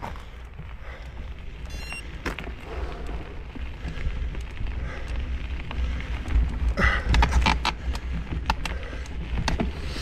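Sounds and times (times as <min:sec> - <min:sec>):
crunch of footsteps on ground: 0:00.0 - 0:10.0
wind rumble on microphone: 0:00.0 - 0:10.0.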